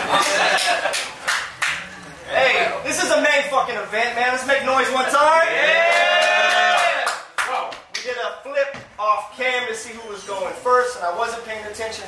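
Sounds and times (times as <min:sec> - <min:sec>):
small crowd clapping: 0:00.0 - 0:02.0, 0:05.8 - 0:08.2.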